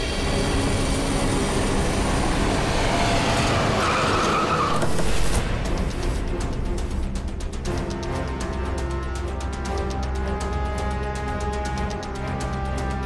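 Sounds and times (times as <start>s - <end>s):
car driving and braking: 0.0s - 6.0s
tyre squeal: 3.8s - 5.2s.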